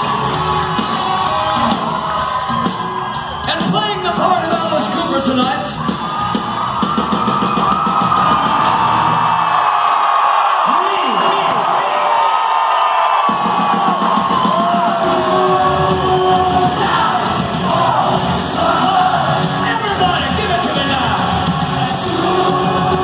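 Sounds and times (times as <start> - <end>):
bass guitar: 0.0 - 9.4, 13.6 - 23.0
drums: 0.0 - 23.0.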